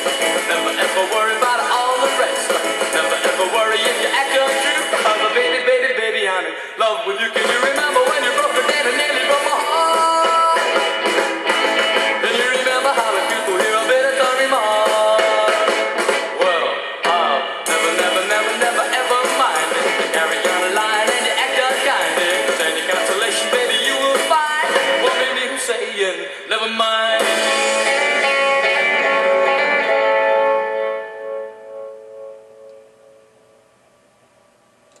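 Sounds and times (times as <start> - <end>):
rock and roll band music: 0.0 - 32.3.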